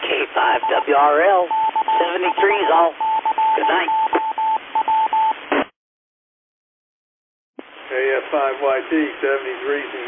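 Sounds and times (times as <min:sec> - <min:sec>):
radio hiss: 0:00.0 - 0:02.9, 0:03.6 - 0:03.9
morse code beeps: 0:00.5 - 0:05.4.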